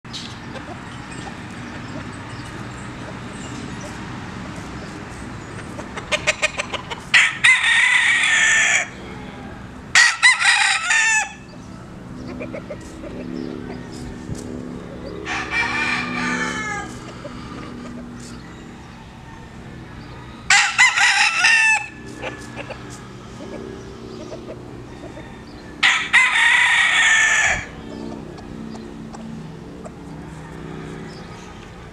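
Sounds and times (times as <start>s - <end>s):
rooster clucking: 0.4s - 31.9s
rooster crowing: 7.1s - 11.5s, 15.1s - 23.8s, 24.4s - 28.1s, 30.0s - 31.9s.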